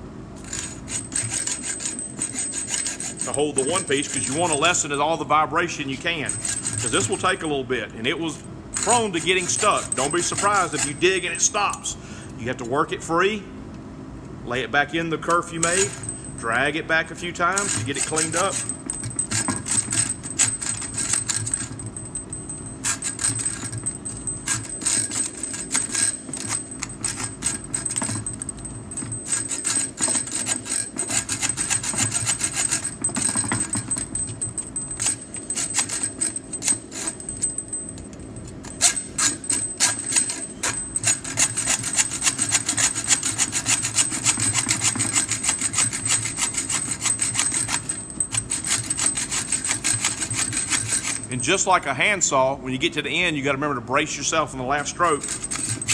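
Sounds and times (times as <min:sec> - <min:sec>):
hacksaw cutting metal: 0:00.4 - 0:04.8, 0:06.2 - 0:07.3, 0:08.8 - 0:11.8, 0:15.3 - 0:16.2, 0:17.5 - 0:37.8, 0:38.6 - 0:51.4, 0:55.0 - 0:55.9.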